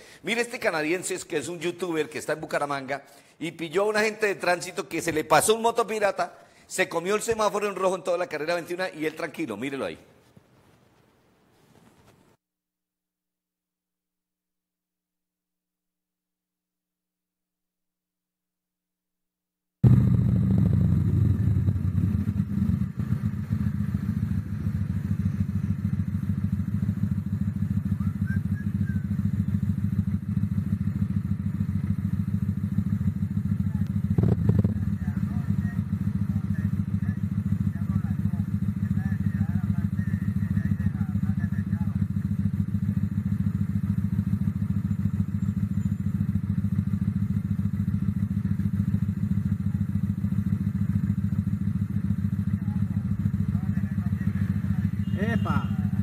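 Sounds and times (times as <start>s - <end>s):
traffic engines rumbling: 19.9s - 56.0s.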